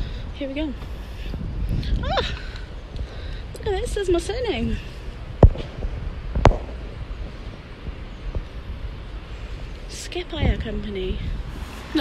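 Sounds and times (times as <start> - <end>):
open-air rumble and hiss: 0.0 - 12.0.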